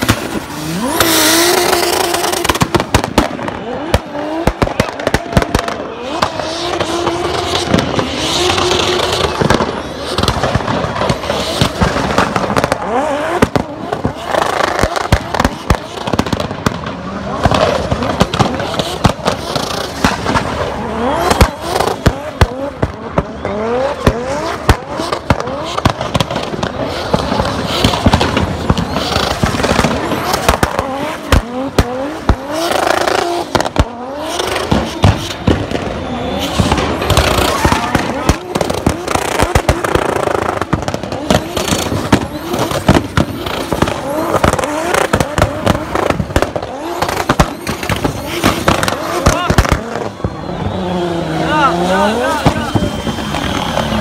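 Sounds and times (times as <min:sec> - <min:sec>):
car engine revving: 0:00.0 - 0:54.0
sharp cracks and bangs: 0:00.0 - 0:54.0.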